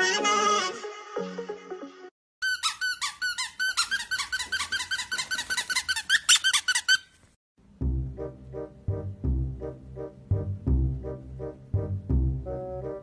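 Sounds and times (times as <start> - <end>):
fast short high squeaks: 2.4 - 7.4
song: 7.8 - 13.0.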